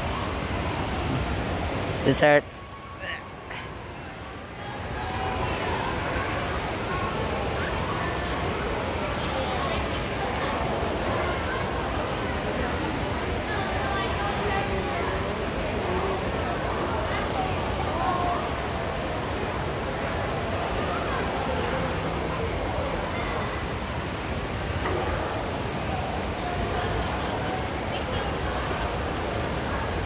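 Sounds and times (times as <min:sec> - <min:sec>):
distant indistinct voices: 0:00.0 - 0:30.0.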